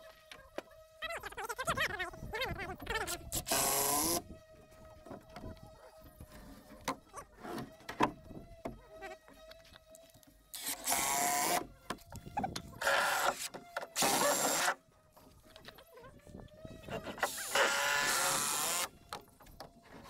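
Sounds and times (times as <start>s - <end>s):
cordless drill driving screws: 3.3s - 4.2s, 10.5s - 11.7s, 12.8s - 14.8s, 17.1s - 19.2s.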